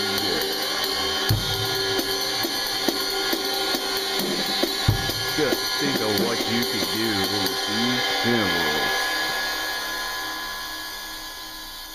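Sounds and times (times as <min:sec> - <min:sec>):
man talking: 0:00.0 - 0:00.7, 0:05.3 - 0:09.1
ride cymbal ringing with sizzle: 0:00.0 - 0:11.9.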